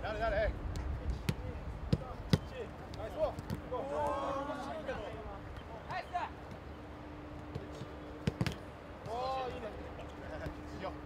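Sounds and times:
players calling: 2.0 - 11.0.

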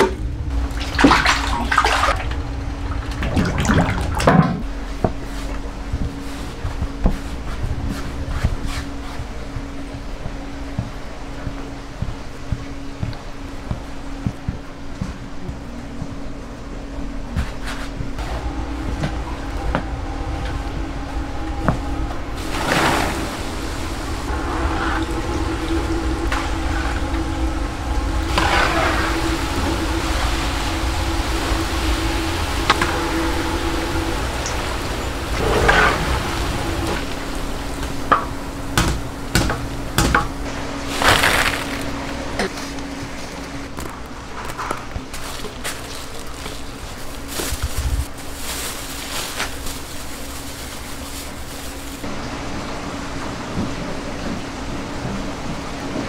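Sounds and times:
steady low hum: 0.0 - 56.0
sizzling: 17.6 - 42.3, 44.6 - 52.2.

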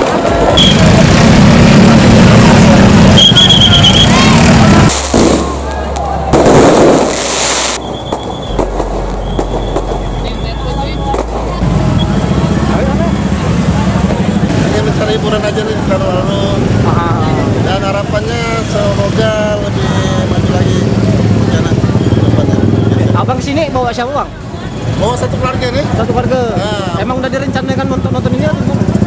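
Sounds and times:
fireworks crackling and popping: 0.0 - 12.8
street crowd din: 0.0 - 29.0
vehicle engines: 0.0 - 29.0.

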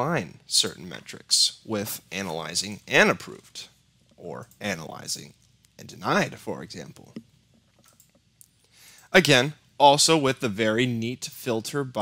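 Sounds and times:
soft breath: 8.6 - 9.2.

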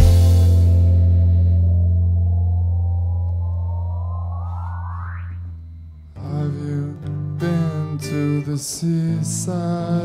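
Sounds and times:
low bass note ringing: 0.0 - 6.1
rising synth sweep: 0.4 - 6.1.

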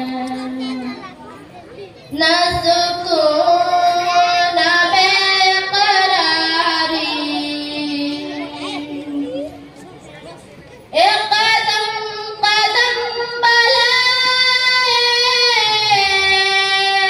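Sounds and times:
young female voice singing: 0.0 - 1.2, 2.0 - 9.7, 10.9 - 17.0.

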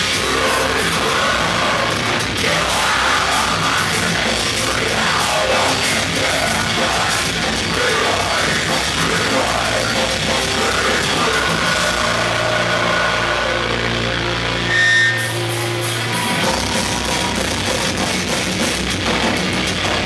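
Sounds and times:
drum kit: 0.0 - 14.1, 14.9 - 20.0
bass guitar: 0.0 - 20.0
distorted electric guitars: 0.0 - 20.0.

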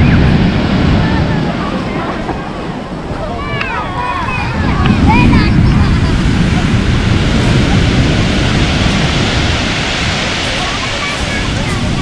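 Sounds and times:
surf breaking on pebble beach: 0.0 - 12.0.

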